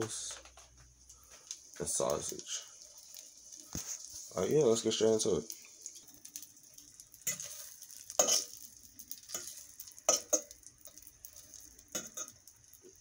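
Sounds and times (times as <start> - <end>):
sausages sizzling in a frying pan: 0.0 - 13.0
fork clinking against pan: 8.2 - 8.6, 9.3 - 10.5.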